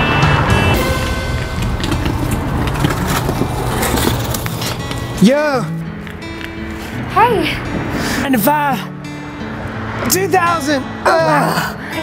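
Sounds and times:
background music: 0:00.0 - 0:12.0
cars passing: 0:00.0 - 0:12.0.

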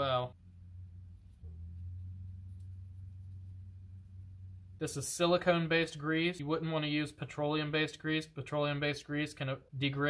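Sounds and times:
steady low hum: 0:00.0 - 0:06.4.

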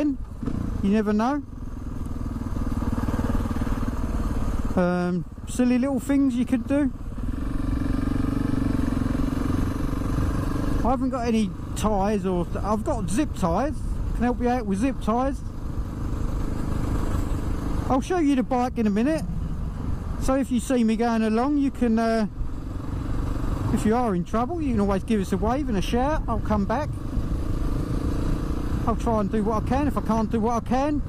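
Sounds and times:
motorcycle engine cruising: 0:00.0 - 0:31.0
road noise: 0:00.0 - 0:31.0.

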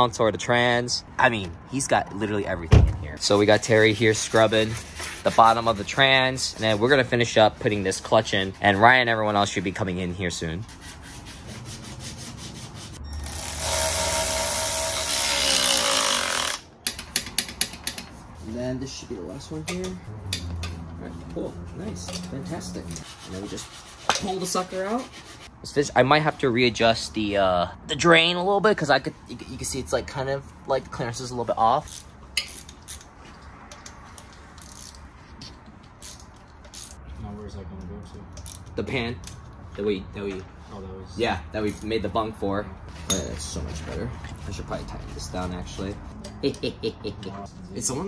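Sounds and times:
power tool running: 0:13.2 - 0:16.6.

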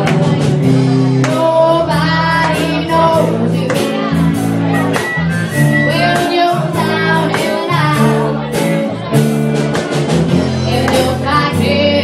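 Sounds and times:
woman singing lead: 0:00.0 - 0:09.2, 0:10.5 - 0:12.0
bass and drums: 0:00.0 - 0:12.0
electric guitars: 0:00.0 - 0:12.0.

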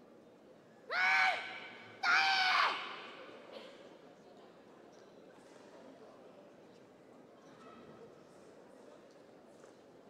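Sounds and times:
short echo in a hall: 0:00.9 - 0:04.2.

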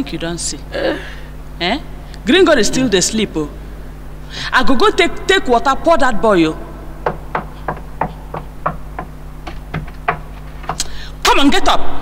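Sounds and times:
steady low hum: 0:00.0 - 0:12.0
sharp knocks: 0:07.0 - 0:10.9.

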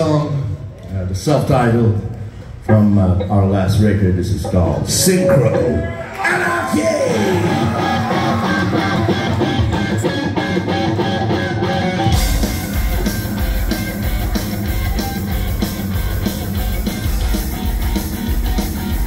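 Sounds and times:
drums: 0:06.2 - 0:19.0
electric guitar: 0:07.1 - 0:19.0
heavy metal band playing live: 0:07.1 - 0:19.0.

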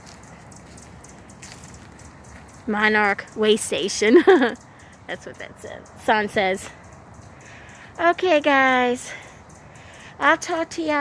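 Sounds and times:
rustling of garden plants: 0:00.0 - 0:04.4.

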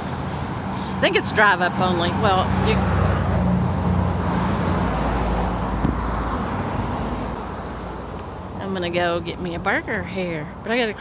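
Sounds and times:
road traffic engine hum: 0:00.0 - 0:11.0.

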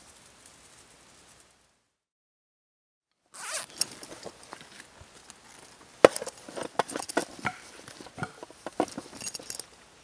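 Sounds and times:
zipper on canvas bag: 0:03.4 - 0:04.2
hands rummaging in bag: 0:03.4 - 0:09.6.

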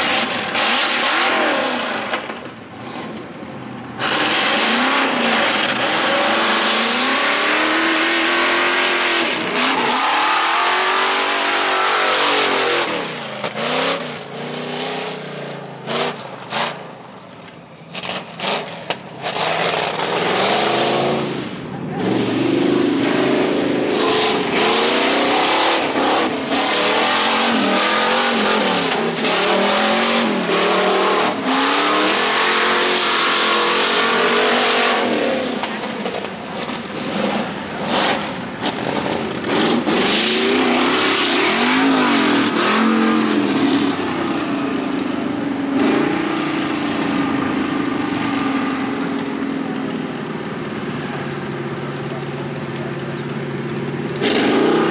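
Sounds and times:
buggy engines revving: 0:00.0 - 0:54.9.

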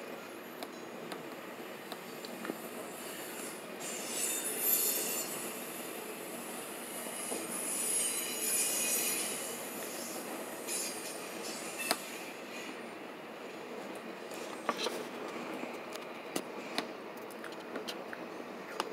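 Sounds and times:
steel wheels squealing: 0:02.1 - 0:12.8.

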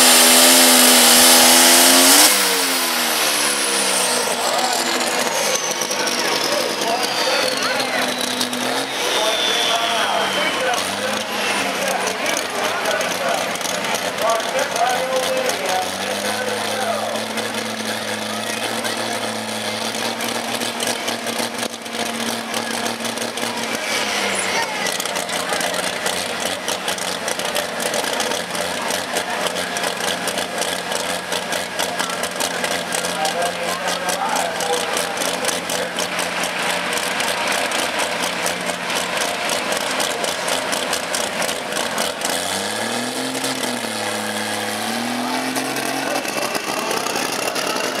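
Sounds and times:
tractor engine running and revving: 0:00.0 - 0:48.0.

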